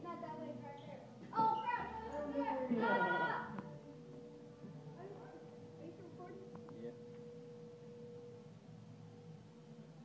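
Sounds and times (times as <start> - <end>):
low background hum: 0.0 - 10.0.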